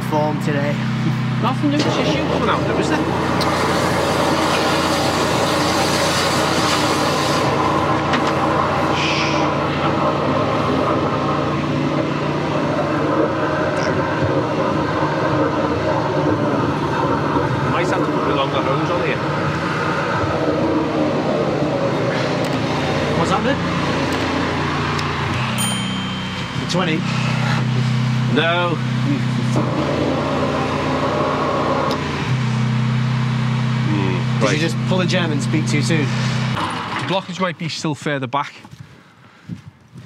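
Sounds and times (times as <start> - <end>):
drain jetter engine running: 0.0 - 37.2
high-pressure hose in pipe: 3.2 - 28.3.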